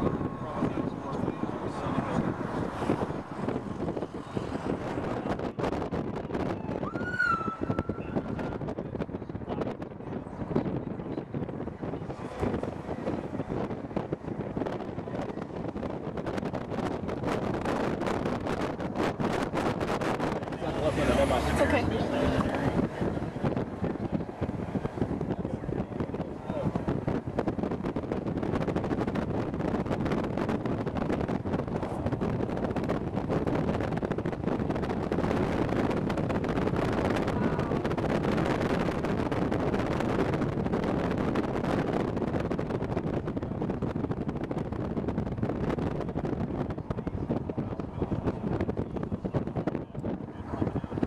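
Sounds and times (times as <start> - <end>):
car road noise: 0.0 - 51.0
wind buffeting microphone: 0.0 - 51.0.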